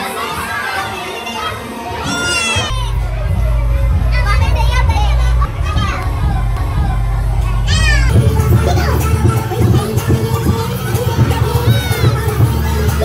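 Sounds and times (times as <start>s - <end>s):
dance music with heavy bass: 2.7s - 13.0s.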